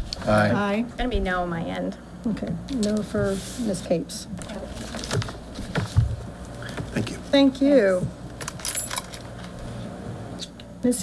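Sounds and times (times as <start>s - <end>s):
papers rustling: 4.4s - 7.1s
metallic jingling: 8.6s - 9.2s.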